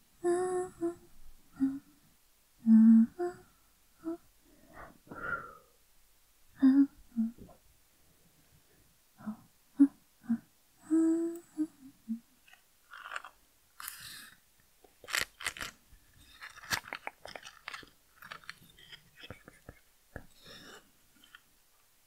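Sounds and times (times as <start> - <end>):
woman humming: 0.2 - 1.9, 2.6 - 4.3, 6.6 - 7.6, 9.2 - 12.3
sharp clicks and crackles: 12.5 - 14.1, 14.8 - 20.4.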